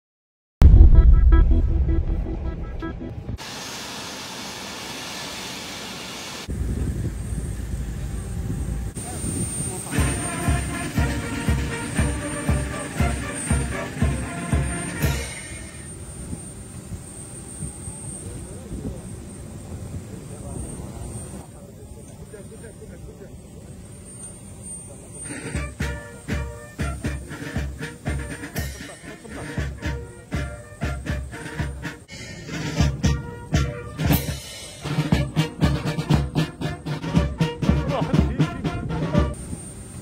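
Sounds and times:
musical sting: 0.6s - 3.4s
jet engines rumbling and whining: 1.0s - 40.0s
people talking: 8.9s - 16.4s, 17.6s - 23.9s, 24.7s - 31.8s, 37.2s - 39.4s
steady hiss: 39.3s - 40.0s.

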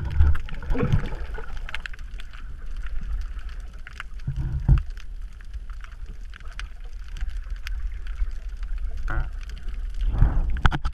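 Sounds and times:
faint clicks and crackles: 0.0s - 10.9s
underwater rumble of moving water: 0.0s - 10.9s.

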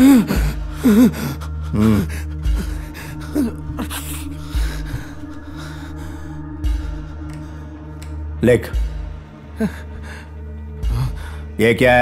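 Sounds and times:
man crying out in pain: 0.0s - 4.4s
low music drone: 0.0s - 12.0s.

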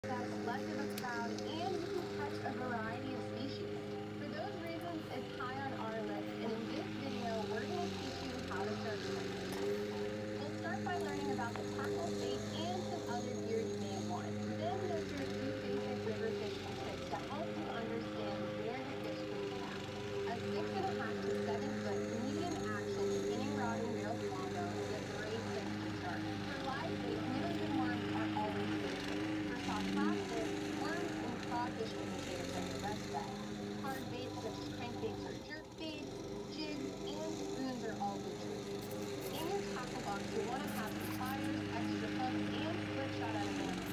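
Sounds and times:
lawn mower engine running: 0.0s - 43.9s
voices: 0.0s - 43.9s.

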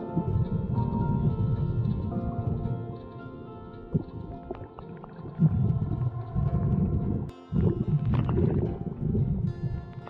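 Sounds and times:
underwater bubbles rumbling: 0.0s - 10.0s.

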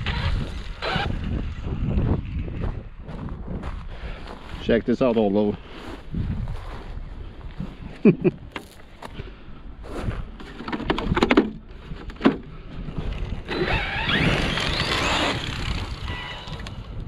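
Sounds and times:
gravel scraping: 0.0s - 17.0s
footsteps on gravel: 2.0s - 10.6s.

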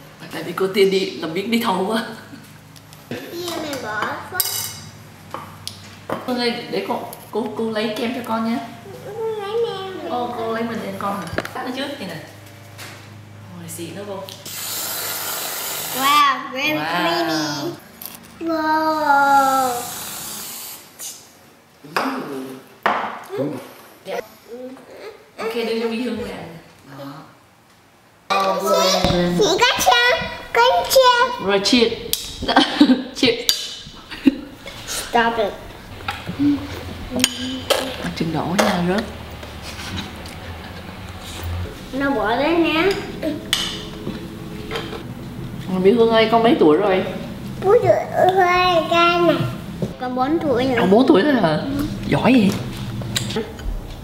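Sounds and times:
spoons clinking in bowls: 4.4s - 4.9s
aerosol can spraying: 14.5s - 16.0s.

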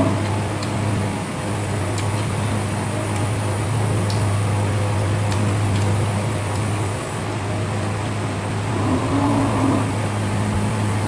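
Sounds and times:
electric fan humming: 0.0s - 11.0s
faint clicks of eating by hand: 0.2s - 0.8s, 1.9s - 2.4s, 3.1s - 3.3s, 4.0s - 4.3s, 4.9s - 6.8s.

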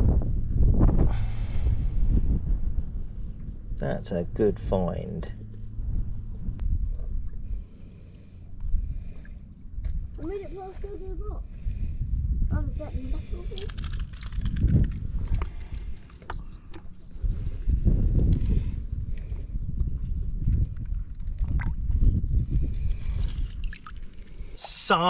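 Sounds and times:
wind buffeting microphone: 0.0s - 24.6s.

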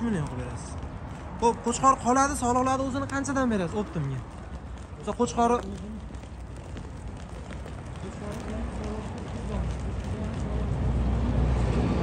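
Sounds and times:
sheep hooves clicking on pavement: 0.0s - 11.6s.

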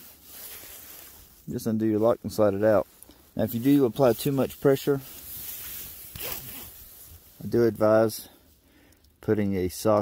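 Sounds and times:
nylon fabric scraping and rustling: 0.0s - 1.7s, 3.3s - 7.7s.

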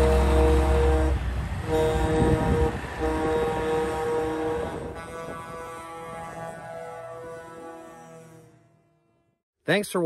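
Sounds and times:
truck engines rumbling: 0.0s - 8.8s
truck air horn: 0.0s - 9.4s.

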